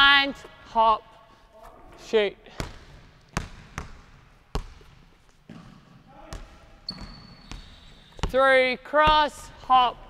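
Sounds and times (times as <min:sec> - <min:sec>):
basketball bouncing on wooden floor: 0:02.5 - 0:08.4.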